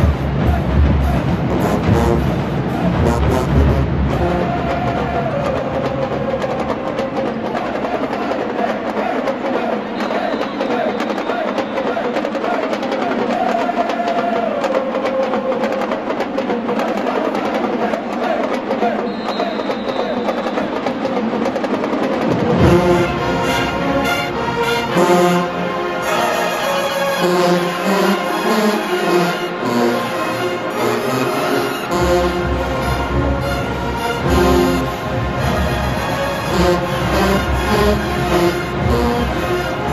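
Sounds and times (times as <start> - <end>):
brass section with tubas: 0.0 - 6.4, 22.5 - 39.9
people chanting in unison: 0.0 - 20.8, 22.5 - 39.9
percussion beat: 0.0 - 39.9.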